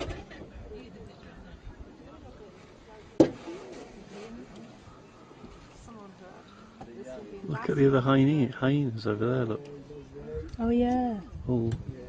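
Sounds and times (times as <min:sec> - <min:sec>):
faint low murmuring: 0:00.0 - 0:12.0.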